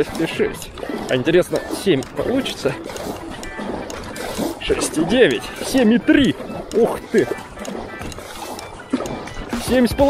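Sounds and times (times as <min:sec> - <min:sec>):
paddle blades splashing: 0:00.0 - 0:10.0
water rushing around boat hull: 0:00.0 - 0:10.0.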